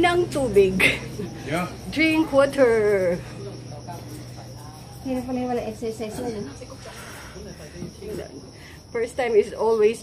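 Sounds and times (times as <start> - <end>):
insects chirring: 0.0 - 10.0
faint voices: 0.9 - 10.0.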